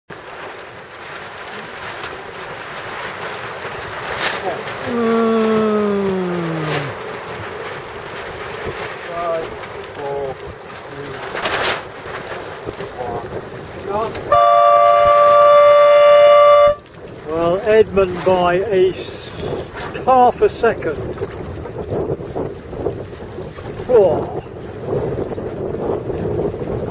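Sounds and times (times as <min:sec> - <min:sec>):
water lapping: 0:00.1 - 0:26.9
wind buffeting microphone: 0:00.1 - 0:26.9
horn long blast: 0:14.3 - 0:16.8.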